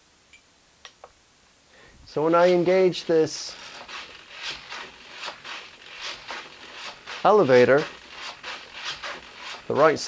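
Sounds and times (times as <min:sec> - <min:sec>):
faint rasping of servos: 0:02.2 - 0:10.0.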